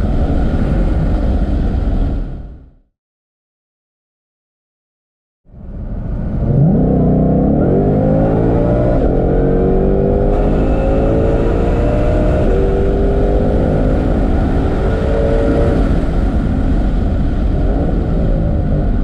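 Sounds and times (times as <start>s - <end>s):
car engine at full throttle: 5.5s - 19.0s.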